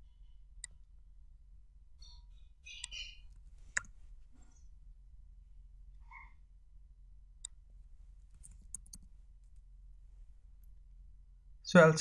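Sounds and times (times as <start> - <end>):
low steady hum: 0.0 - 12.0
keyboard and mouse clicks: 2.7 - 4.0, 8.3 - 9.1.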